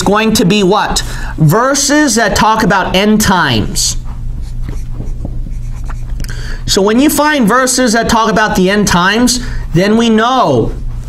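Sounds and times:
steady low hum: 0.0 - 11.0
marker writing on whiteboard: 4.0 - 6.2.

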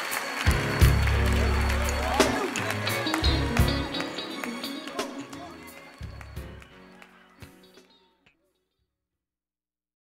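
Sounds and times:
band playing: 0.0 - 8.0
gospel choir singing: 0.4 - 7.8.

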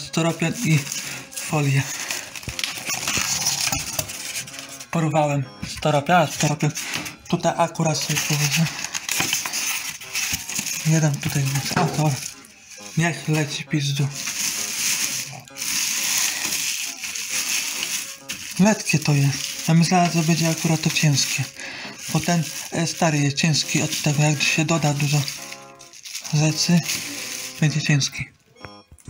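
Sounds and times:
plastic film and styrofoam rustling: 0.0 - 5.0, 5.7 - 28.3.

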